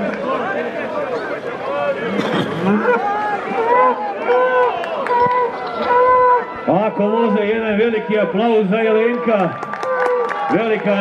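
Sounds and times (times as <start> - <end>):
men shouting and yelling: 0.3 - 11.0.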